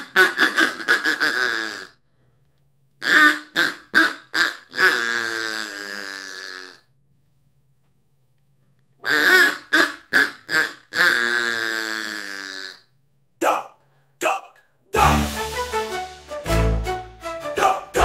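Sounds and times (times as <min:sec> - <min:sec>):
synthetic voice quacking: 0:00.0 - 0:01.9, 0:03.0 - 0:06.8, 0:09.0 - 0:12.8, 0:13.4 - 0:15.2, 0:17.6 - 0:18.0.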